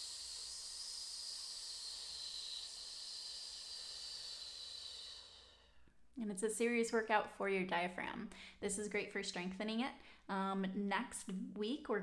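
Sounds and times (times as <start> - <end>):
person hissing exhale: 0.0 - 6.0.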